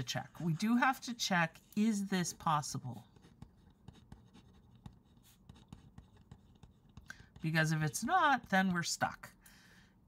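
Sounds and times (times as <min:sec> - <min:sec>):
pen scratching on paper: 0:00.0 - 0:08.6.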